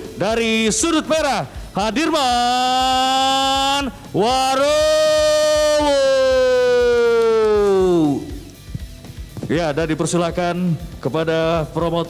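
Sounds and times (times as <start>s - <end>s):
announcer shouting into microphone: 0.0s - 8.4s.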